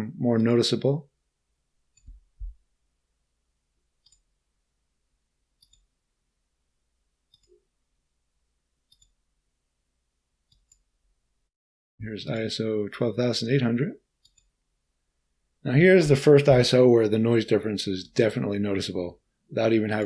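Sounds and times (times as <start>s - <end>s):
computer mouse clicks: 4.0s - 4.3s, 5.6s - 5.9s, 7.3s - 7.6s, 8.9s - 9.2s, 10.5s - 10.9s, 14.2s - 14.6s.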